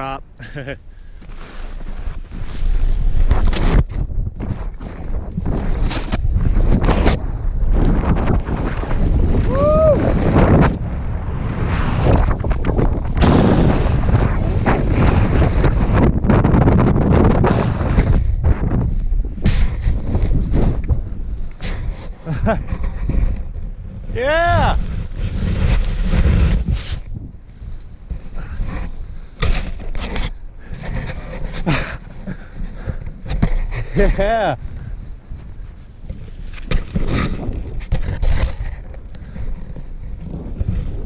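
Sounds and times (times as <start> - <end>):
snowboard sliding through powder snow: 1.3 - 41.0
wind buffeting microphone: 1.8 - 41.0.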